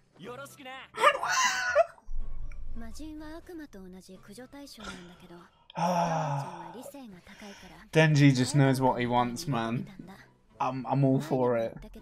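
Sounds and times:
man sighing: 0:05.7 - 0:06.7.

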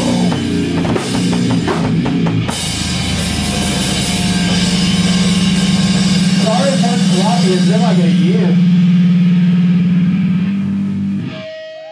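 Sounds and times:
low electric drone: 0:00.0 - 0:11.3.

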